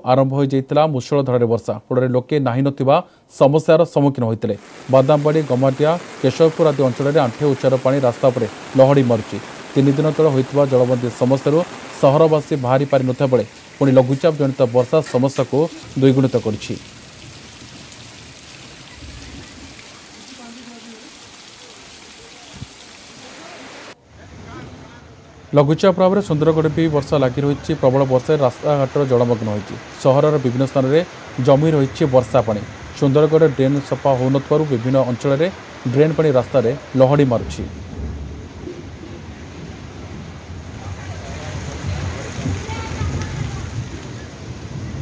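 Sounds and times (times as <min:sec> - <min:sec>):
water pouring off a roof: 0:04.6 - 0:24.0, 0:26.0 - 0:45.0
heavy rain hissing: 0:04.6 - 0:45.0.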